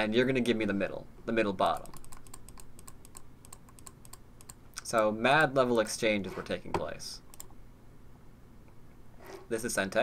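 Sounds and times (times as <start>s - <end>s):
computer keyboard typing: 1.7s - 4.6s, 7.3s - 7.5s.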